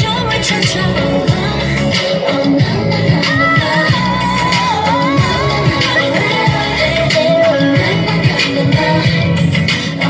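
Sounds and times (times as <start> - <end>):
pop song with sung melody: 0.0 - 10.0.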